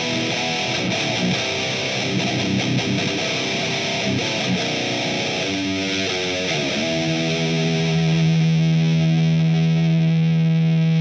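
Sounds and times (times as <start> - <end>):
distorted electric guitar note: 0.0 - 11.0.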